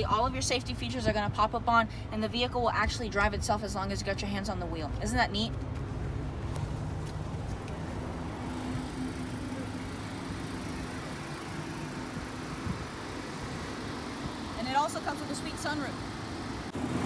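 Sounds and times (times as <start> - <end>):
motor vehicles rumbling: 0.0 - 17.0.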